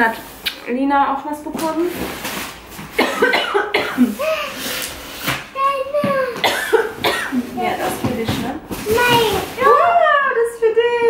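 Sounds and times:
toddler coughing: 3.0 - 4.6, 5.9 - 7.4
toddler babbling: 5.6 - 6.4, 8.9 - 9.7.

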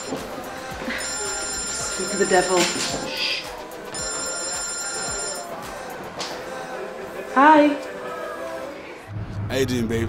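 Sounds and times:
phone ringtone high electronic tone: 0.0 - 0.3, 0.9 - 5.5.

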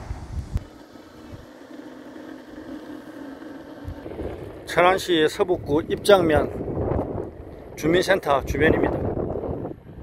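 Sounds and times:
wind on microphone: 0.0 - 1.5, 3.8 - 10.0
car road and engine noise: 0.0 - 10.0.

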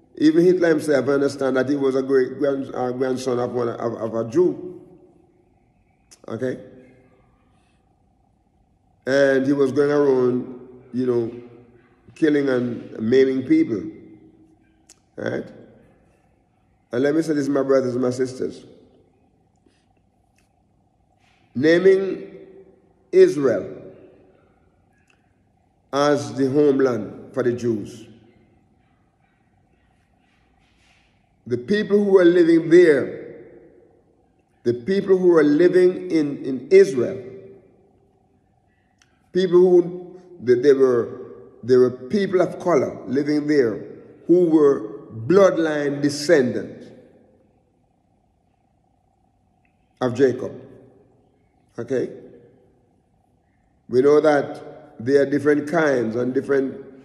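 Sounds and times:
man speaking: 0.1 - 4.7, 6.1 - 6.8, 9.0 - 11.5, 12.1 - 14.0, 15.1 - 15.6, 16.9 - 18.8, 21.6 - 22.5, 23.1 - 24.0, 25.9 - 28.2, 31.5 - 33.3, 34.6 - 37.5, 39.3 - 47.0, 50.0 - 50.7, 51.7 - 52.3, 53.9 - 57.0.

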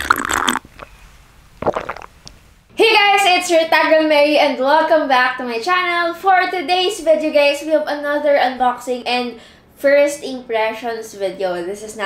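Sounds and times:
gurgling sip through straw: 0.0 - 1.0, 1.6 - 2.3
woman's voice: 2.8 - 12.0.

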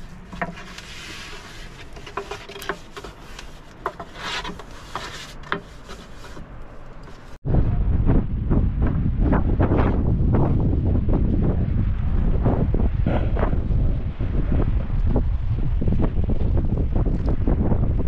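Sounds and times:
wind buffeting microphone: 7.4 - 18.0.

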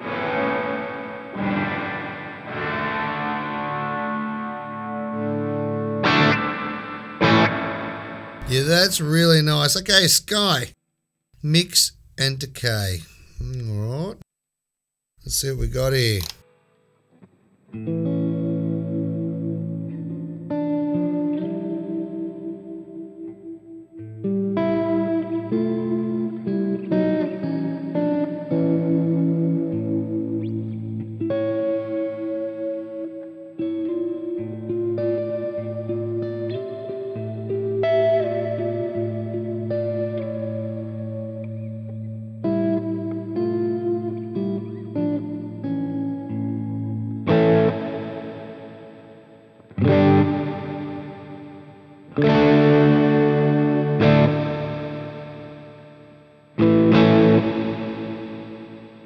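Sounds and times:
clean electric guitar with reverb: 0.0 - 10.7, 15.3 - 59.0.

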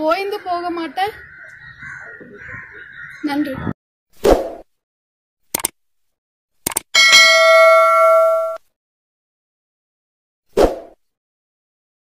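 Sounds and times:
mouse clicks: 5.5 - 5.7, 6.6 - 6.9
notification bell ding: 7.0 - 8.6.

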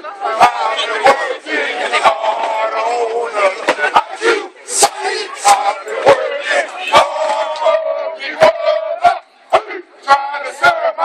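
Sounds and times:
men chanting in unison: 0.0 - 11.0.

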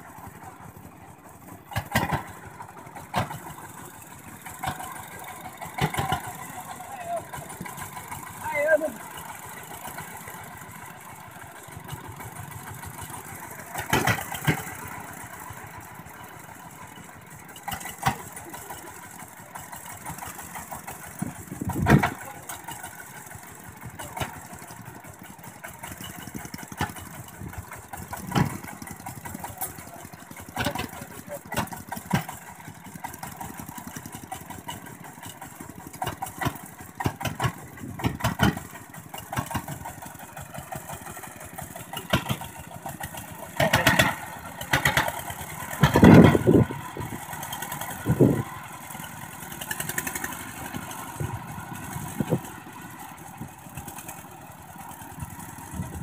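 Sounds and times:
diesel engine running: 0.0 - 56.0
knocks and clanks: 13.7 - 14.8.

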